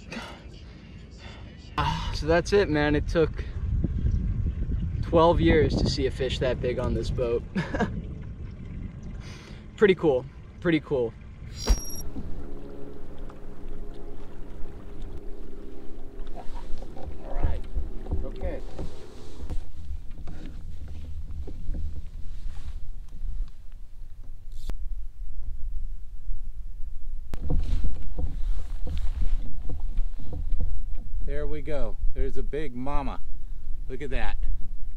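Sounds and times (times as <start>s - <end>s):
wind rumble on microphone: 2.2s - 9.7s, 11.2s - 34.9s
boat motor hum: 3.6s - 33.9s.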